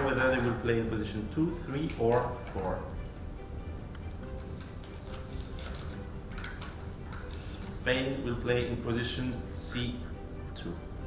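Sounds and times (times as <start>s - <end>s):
soft background music: 0.0s - 11.0s
plastic ball clicks and rustles: 3.9s - 7.8s.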